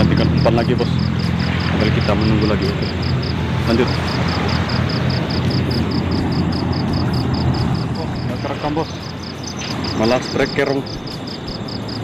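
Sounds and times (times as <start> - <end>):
low outdoor rumble: 0.0 - 12.0
high-pitched pulsing chirp: 0.1 - 12.0.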